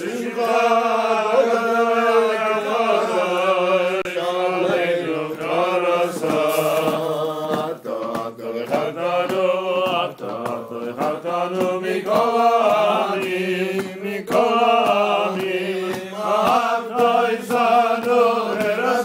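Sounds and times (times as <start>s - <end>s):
voices singing chant-like melody: 0.0s - 19.0s.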